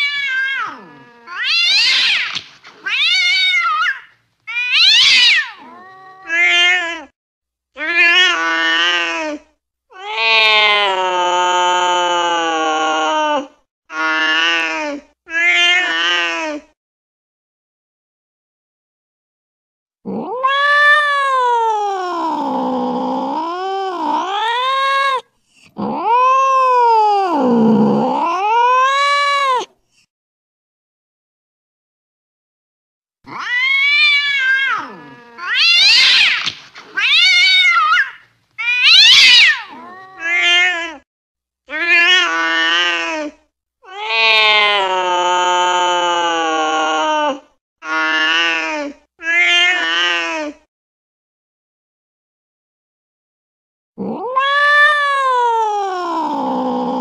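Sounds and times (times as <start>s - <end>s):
cats yowling in a fight: 0.0s - 7.1s, 7.8s - 16.5s, 20.1s - 25.2s, 25.8s - 29.7s, 33.3s - 41.0s, 41.7s - 50.6s, 54.0s - 57.0s.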